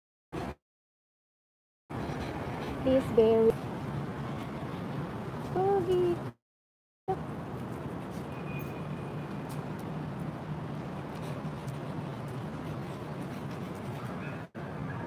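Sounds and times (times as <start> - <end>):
distant city traffic hum: 1.9 - 6.4, 7.1 - 15.0.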